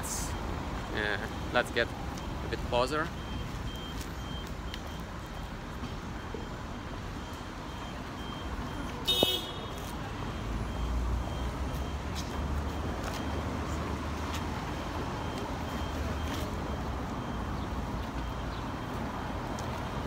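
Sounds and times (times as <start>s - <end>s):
passing cars hum: 0.0s - 20.0s
faint electronic beep: 1.2s - 9.3s.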